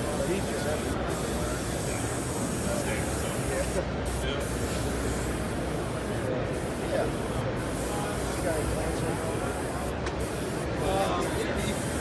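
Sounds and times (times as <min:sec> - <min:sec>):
airbrush spraying hiss: 0:00.0 - 0:12.0.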